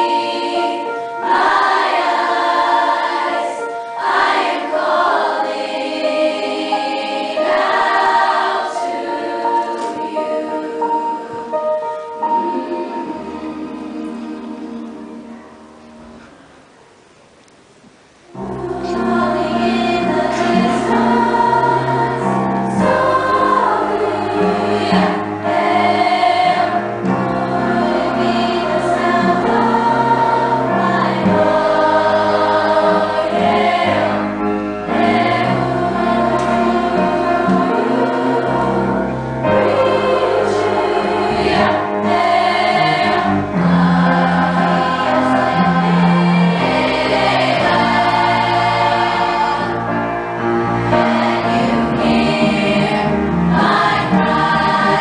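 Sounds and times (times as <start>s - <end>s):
girls' chorus singing: 0.0s - 15.7s, 18.3s - 50.1s, 50.8s - 55.0s.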